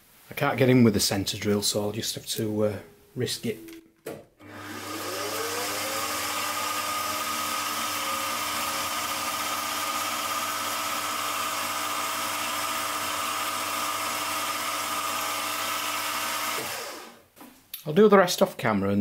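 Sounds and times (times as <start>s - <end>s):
milling machine spindle whining: 4.4s - 17.2s.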